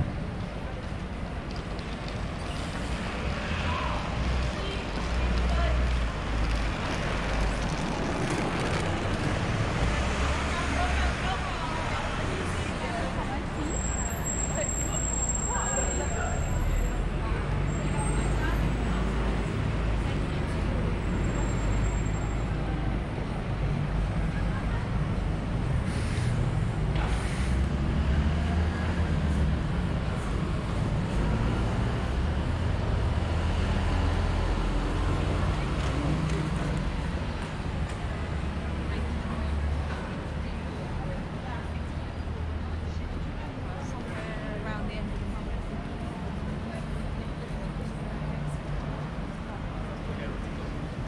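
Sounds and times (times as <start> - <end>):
passers-by talking: 0.0 - 51.0
rumble of buses and cars: 0.0 - 51.0.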